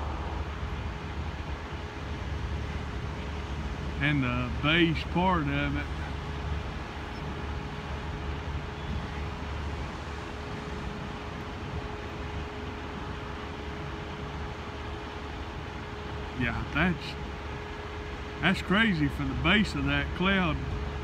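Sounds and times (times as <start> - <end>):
faint steady hum: 0.0 - 21.0
road traffic rumble: 0.0 - 21.0.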